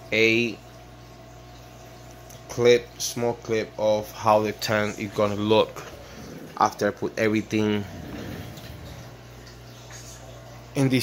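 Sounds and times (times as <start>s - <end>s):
air pump humming: 4.2s - 10.2s
bubbling water: 5.1s - 10.1s.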